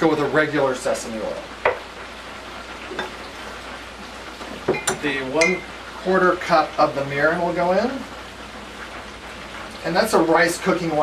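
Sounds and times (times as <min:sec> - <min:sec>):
chicken deep-frying in hot oil: 0:00.0 - 0:11.0.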